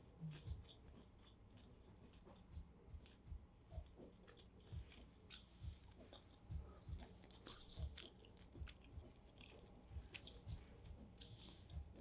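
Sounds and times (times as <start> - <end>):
chewing and crunching: 0.0 - 12.0.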